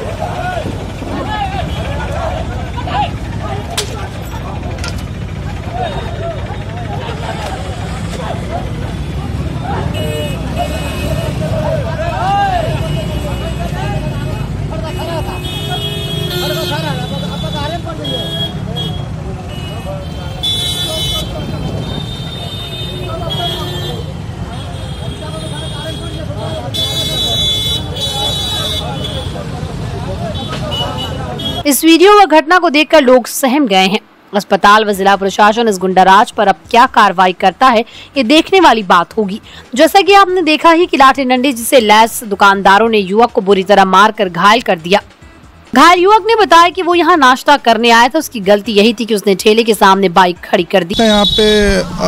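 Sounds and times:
crowd shouting and talking: 0.0s - 31.7s, 50.9s - 52.0s
traffic noise: 0.0s - 52.0s
vehicle horn honking: 14.4s - 29.3s, 50.9s - 52.0s.

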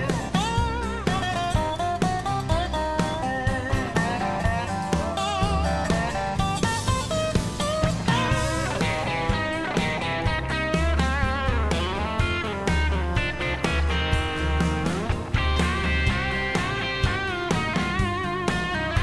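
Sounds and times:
electric guitar lead with bent notes: 0.0s - 19.0s
steady drum beat: 0.0s - 19.0s
walking upright bass: 0.0s - 19.0s.

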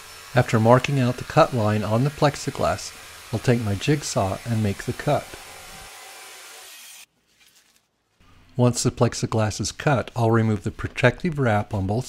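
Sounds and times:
jigsaw cutting plastic sheet: 0.0s - 7.1s.

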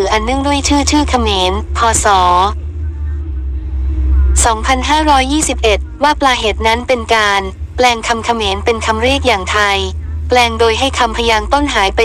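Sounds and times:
narrator speaking: 0.0s - 12.0s
steady low drone: 0.0s - 12.0s.

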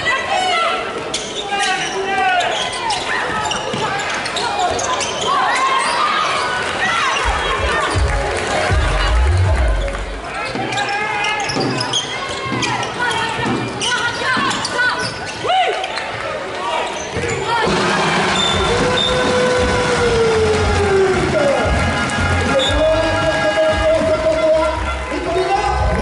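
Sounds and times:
players and spectators voices: 0.0s - 26.0s
shoes squeaking on floor: 1.1s - 8.0s, 9.3s - 16.2s, 16.8s - 17.6s.

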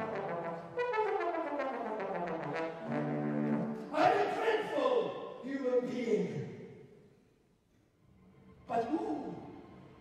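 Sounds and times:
trombone playing: 0.0s - 3.9s
man talking: 3.8s - 6.5s, 8.7s - 9.4s.

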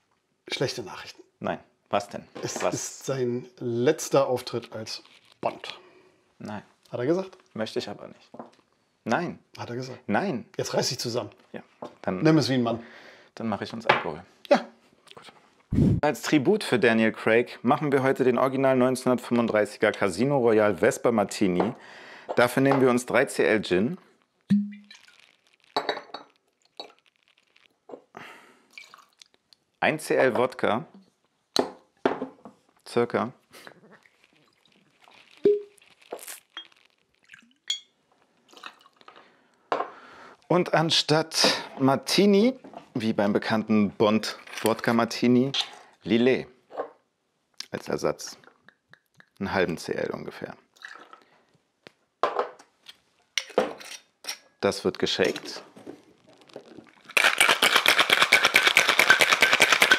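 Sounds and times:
bottles and shaker clinking: 24.5s - 27.0s, 34.4s - 37.9s, 56.4s - 59.9s
liquid pouring: 24.5s - 27.8s, 28.7s - 29.3s, 33.8s - 39.2s, 50.8s - 51.3s, 56.2s - 59.9s
glass and metal tools clinking: 25.8s - 27.0s, 37.6s - 37.9s.

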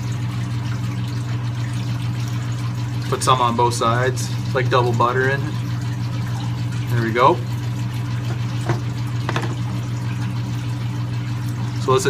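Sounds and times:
water pump humming: 0.0s - 12.0s
water running: 0.0s - 12.0s.

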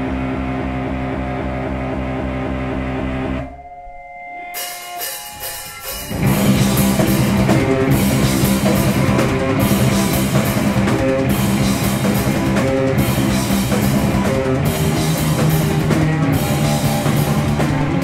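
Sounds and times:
live rock band playing: 0.0s - 18.0s
ringing guitar notes: 0.0s - 18.0s.

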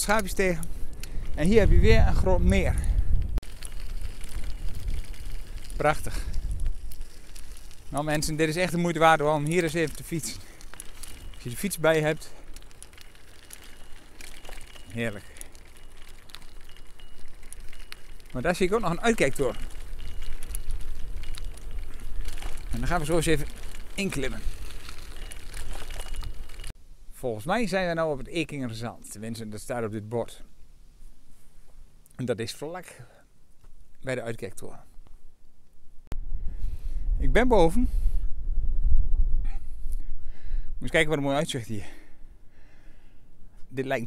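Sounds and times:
wind rumble on microphone: 0.0s - 11.7s, 12.4s - 26.7s, 35.9s - 41.1s
bicycle tyres on gravel: 0.0s - 35.3s, 36.3s - 38.3s, 39.6s - 44.0s.

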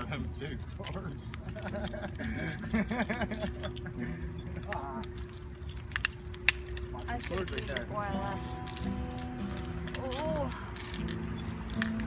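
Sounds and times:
light clicking and rattling: 0.6s - 12.0s.

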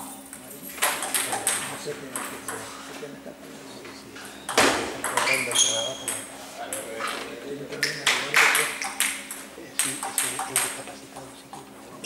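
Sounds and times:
table tennis ball clicks: 0.8s - 1.6s, 4.5s - 6.8s, 7.8s - 10.8s.

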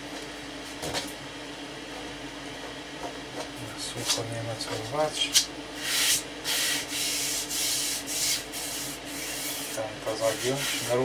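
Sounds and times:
hand rubbing veneer hissing: 5.8s - 11.0s.

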